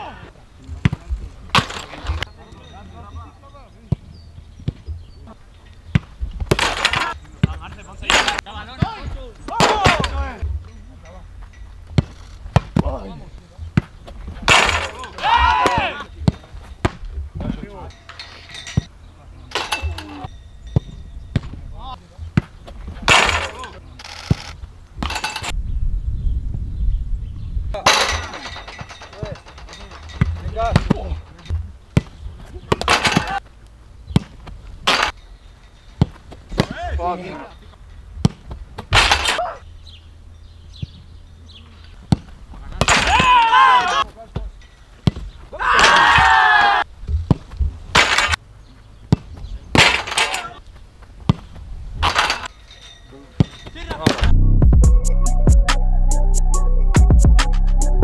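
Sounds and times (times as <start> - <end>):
boots kicking football: 3.9 - 5.1, 11.9 - 13.0, 13.6 - 17.7, 19.8 - 23.5, 30.1 - 35.1, 38.2 - 39.2, 42.0 - 46.4, 47.0 - 48.1, 48.8 - 50.0, 50.6 - 51.7
players shouting: 6.8 - 10.4, 14.5 - 16.4, 23.2 - 24.0, 42.8 - 44.2, 45.5 - 46.9.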